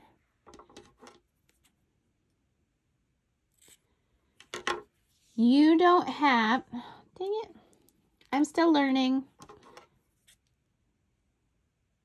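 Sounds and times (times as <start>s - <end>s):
faint scissors handling sounds: 3.5s - 4.5s.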